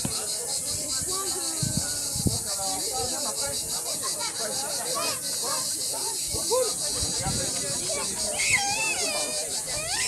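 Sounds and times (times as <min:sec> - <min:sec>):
children chattering: 0:00.0 - 0:10.0
child squealing: 0:08.3 - 0:10.0.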